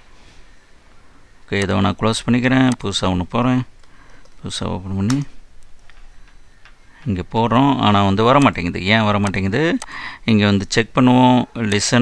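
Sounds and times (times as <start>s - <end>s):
man speaking: 1.5s - 3.7s, 4.4s - 5.4s, 7.0s - 12.0s.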